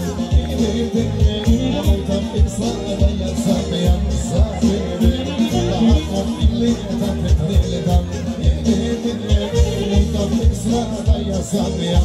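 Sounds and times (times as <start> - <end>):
live band playing folk dance tune: 0.0 - 12.0
steady low drum beat: 0.0 - 12.0.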